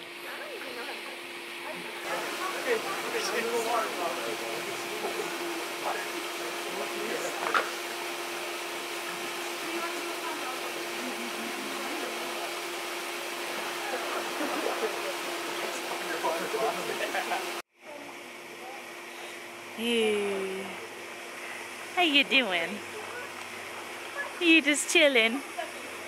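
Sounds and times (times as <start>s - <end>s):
distant chatter of swimmers: 0.0s - 26.0s
low hum with rushing noise: 0.0s - 26.0s.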